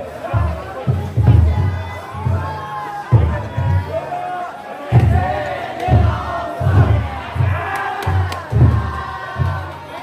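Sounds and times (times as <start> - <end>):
big drum beats: 0.0 - 10.0
crowd shouting and chanting: 0.0 - 10.0.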